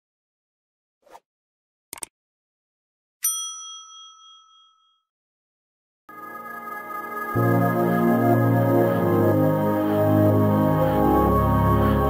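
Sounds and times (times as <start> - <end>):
bright bell ding: 3.2 - 5.0.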